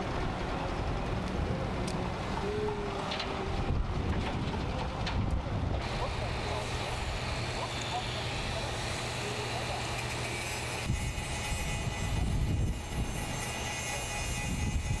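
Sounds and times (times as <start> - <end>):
heavy machinery rumbling: 0.0 - 14.0
angle grinder whining on pipe: 5.8 - 15.0.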